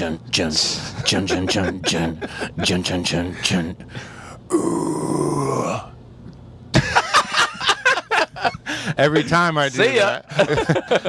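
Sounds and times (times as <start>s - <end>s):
man's rasping vocal noise: 0.0s - 6.0s.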